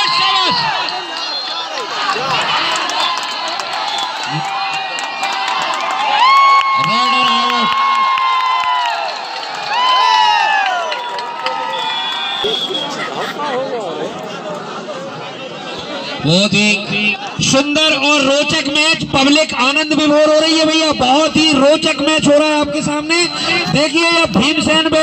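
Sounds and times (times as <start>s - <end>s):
crowd cheering and shouting: 0.0s - 25.0s.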